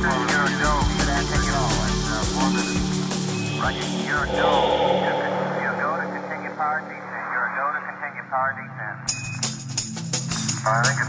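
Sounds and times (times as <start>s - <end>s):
drum and bass track: 0.0s - 6.9s
low drone: 2.5s - 8.1s
radio-like voice sample: 3.6s - 8.3s.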